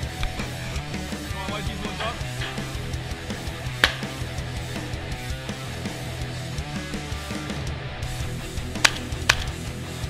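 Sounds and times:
rock music with electric guitar: 0.0s - 10.0s
shotgun shots: 3.8s - 4.2s, 8.8s - 9.5s.

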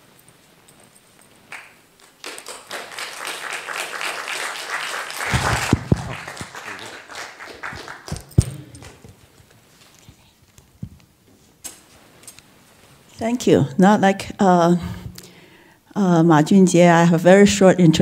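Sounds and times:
audience applauding: 1.5s - 9.1s.

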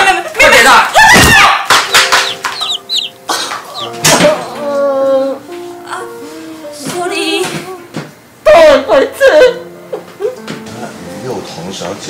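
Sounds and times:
high falling bird chirps: 1.9s - 4.0s
background music chord: 1.9s - 12.0s.

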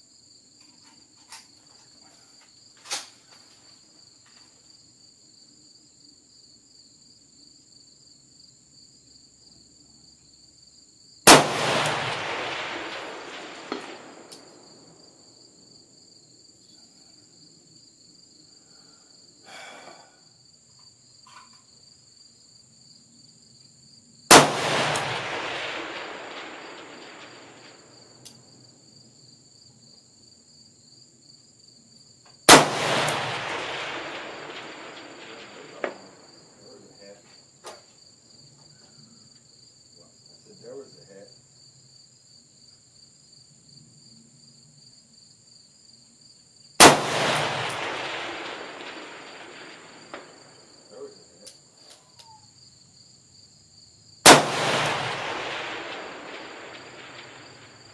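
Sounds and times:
insects chirping: 0.0s - 57.9s
bullet pinging steel target: 11.3s - 14.5s, 24.3s - 28.3s, 32.5s - 36.3s, 46.8s - 50.4s, 54.3s - 57.9s
rifle shots with echo: 11.3s - 15.0s, 24.3s - 28.2s, 32.5s - 37.1s, 46.8s - 51.1s, 54.2s - 57.9s.

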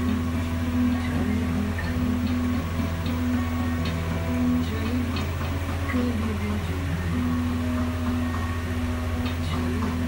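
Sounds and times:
background music: 0.0s - 10.0s
steady low hum: 0.0s - 10.0s.

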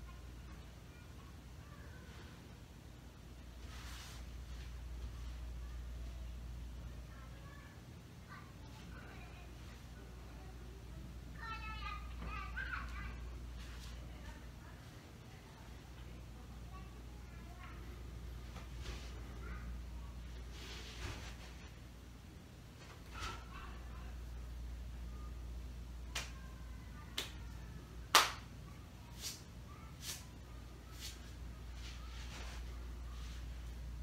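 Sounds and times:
steady low hum: 0.0s - 34.0s
sharp snaps of arm strikes: 28.1s - 28.4s.

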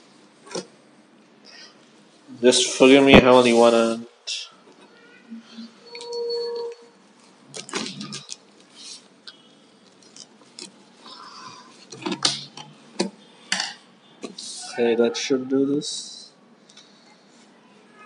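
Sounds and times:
short squeak-like tone: 4.9s - 7.0s.

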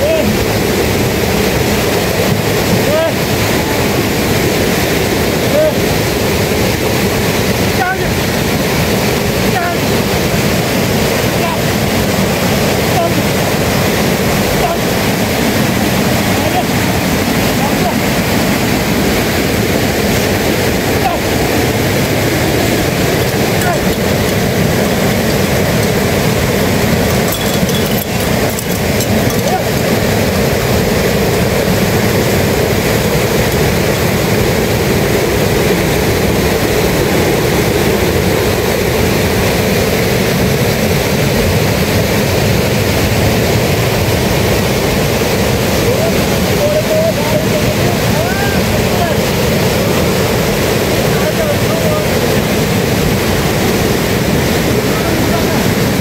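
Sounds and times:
river rushing: 0.0s - 56.0s.

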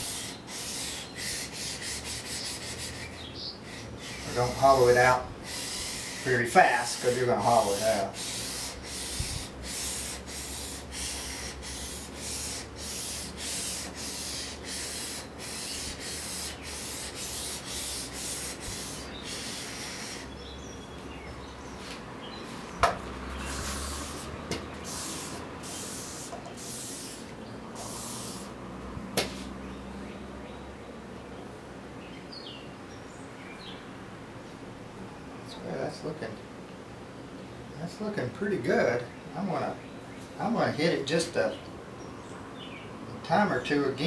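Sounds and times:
blade rubbing on wet whetstone: 0.0s - 20.3s
sharp knocks of knife handling: 22.8s - 23.0s.

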